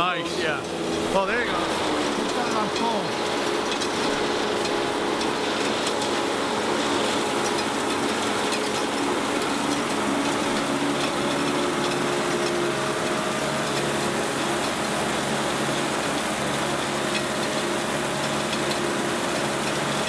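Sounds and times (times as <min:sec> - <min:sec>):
conveyor belt slinging gravel: 0:00.0 - 0:20.0
truck engine and hydraulic drive: 0:00.6 - 0:20.0.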